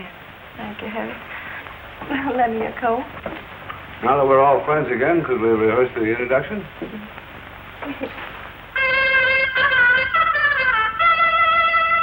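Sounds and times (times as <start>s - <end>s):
film soundtrack hiss: 0.0s - 12.0s
trumpet playing sustained notes: 8.7s - 12.0s.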